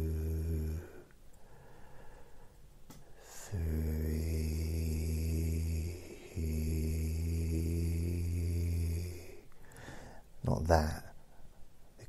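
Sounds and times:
man droning low held notes: 0.0s - 1.0s.

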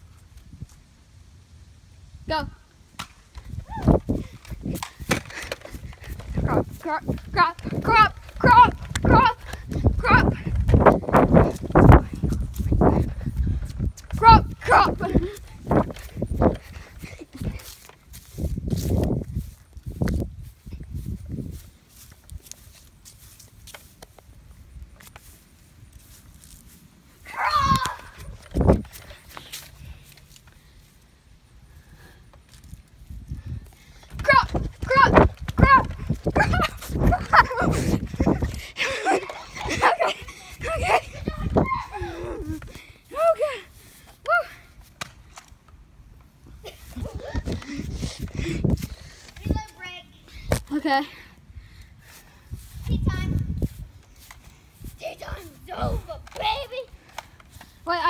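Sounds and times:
kids shouting: 27.3s - 28.3s, 38.8s - 43.6s.

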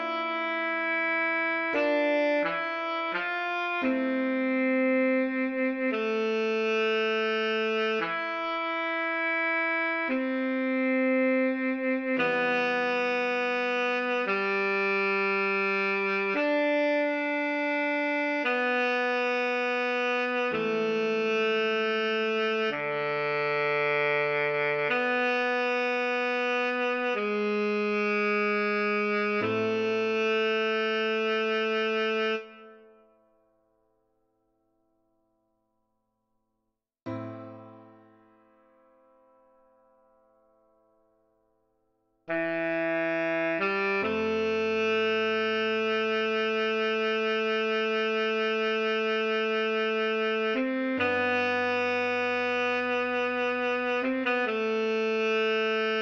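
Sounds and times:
tenor saxophone melody: 0.0s - 33.1s, 42.3s - 56.0s.

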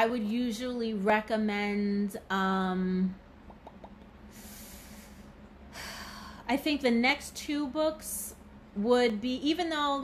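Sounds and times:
woman breathing: 4.3s - 6.5s.

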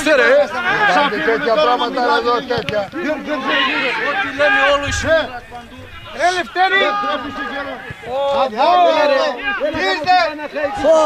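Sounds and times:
men's raised voices: 0.0s - 11.0s.

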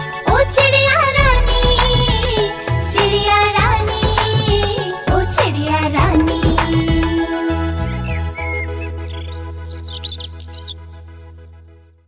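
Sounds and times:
cartoon bird twittering chirps: 8.4s - 10.8s.

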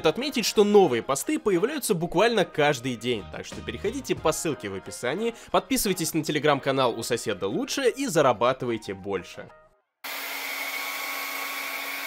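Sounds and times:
hair dryer blowing: 10.0s - 12.0s.

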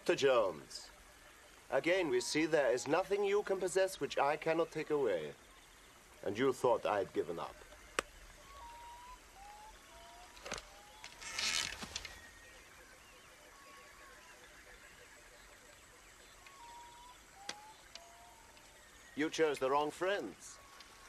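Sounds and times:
rustling hiss: 0.0s - 21.0s
whistled bird calls: 7.2s - 21.0s.

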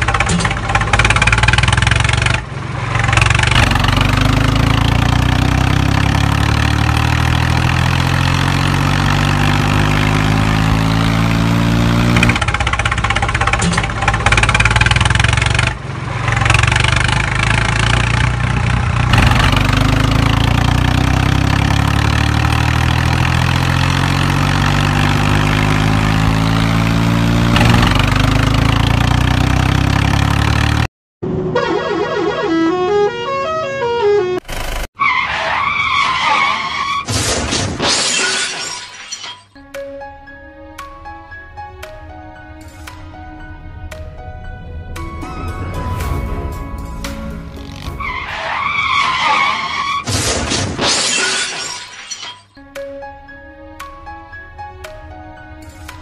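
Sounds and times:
tractor engine revving: 0.0s - 33.3s, 34.4s - 37.5s, 44.8s - 50.8s.

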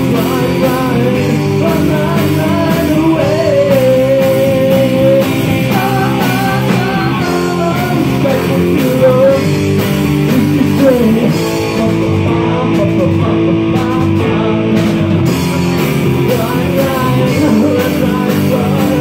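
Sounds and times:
drums and cymbals: 0.0s - 19.0s
electric guitars: 0.0s - 19.0s.

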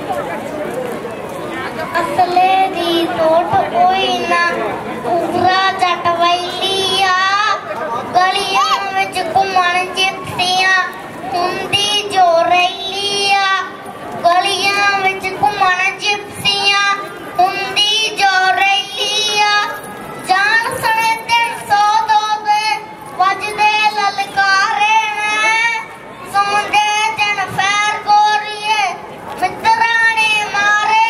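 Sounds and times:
boy singing into a microphone: 1.8s - 31.0s.

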